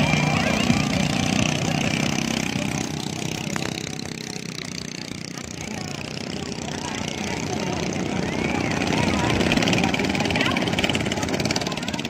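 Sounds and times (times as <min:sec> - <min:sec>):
boat outboard engine running: 0:00.0 - 0:12.0.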